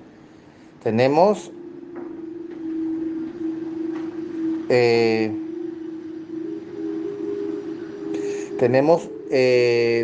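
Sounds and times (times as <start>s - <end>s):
steady droning tone: 0.0s - 10.0s.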